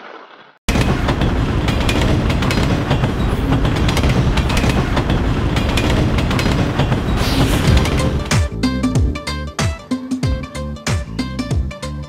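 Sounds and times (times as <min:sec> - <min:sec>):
train wheels clattering on rails: 0:00.7 - 0:08.4.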